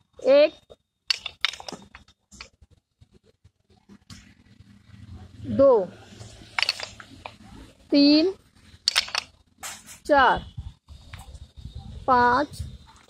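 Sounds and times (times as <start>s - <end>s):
wooden dumbbells clacking: 1.1s - 2.6s, 6.5s - 7.4s, 8.8s - 9.3s.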